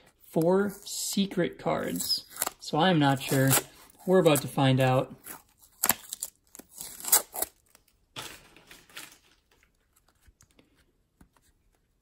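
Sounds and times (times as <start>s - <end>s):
tape peeling off plastic: 5.2s - 7.9s.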